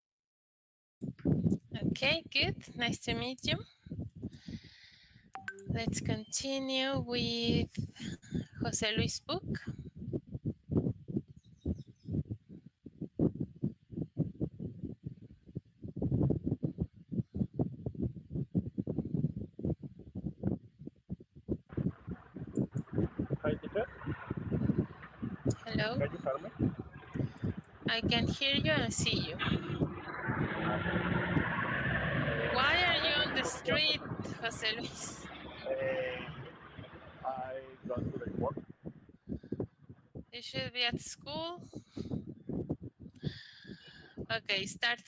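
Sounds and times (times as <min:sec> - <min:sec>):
wind buffeting microphone: 0:01.0 - 0:44.9
low vehicle rumble: 0:21.7 - 0:40.3
muffled street traffic: 0:21.8 - 0:38.6.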